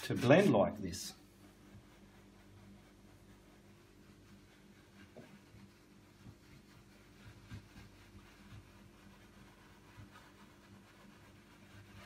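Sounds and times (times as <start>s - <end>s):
brush scratching on canvas: 0.0s - 12.0s
low steady hum: 0.0s - 12.0s.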